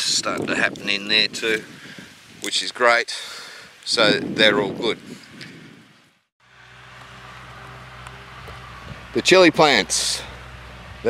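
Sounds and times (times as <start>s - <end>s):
outdoor hiss: 0.3s - 4.2s.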